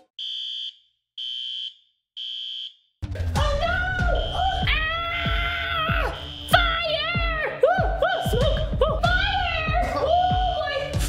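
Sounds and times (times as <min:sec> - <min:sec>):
smoke alarm beeping: 0:00.2 - 0:02.8, 0:06.1 - 0:06.7
music: 0:03.0 - 0:11.0.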